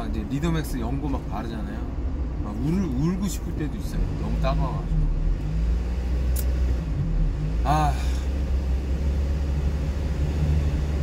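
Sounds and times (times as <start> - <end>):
truck engine rumble: 0.0 - 11.0.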